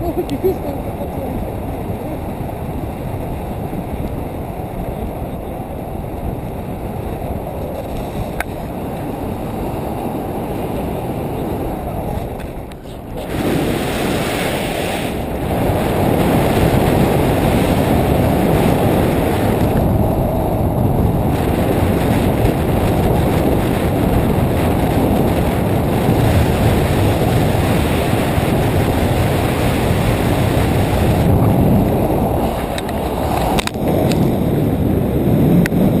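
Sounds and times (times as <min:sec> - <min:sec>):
wind rushing over microphone: 0:00.0 - 0:36.0.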